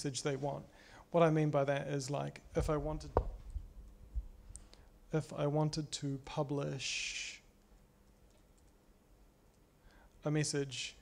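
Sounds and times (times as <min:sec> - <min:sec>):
low thumps: 0:02.6 - 0:04.3.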